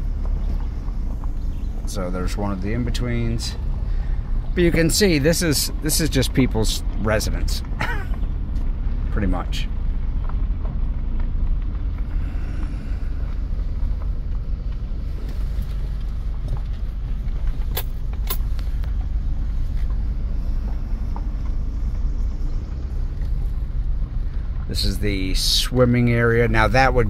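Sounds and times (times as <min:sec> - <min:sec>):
vehicle engine and tyre rumble: 0:00.0 - 0:27.0.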